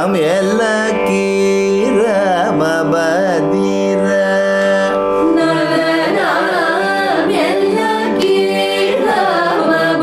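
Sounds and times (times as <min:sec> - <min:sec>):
person singing ornamented melody: 0:00.0 - 0:10.0.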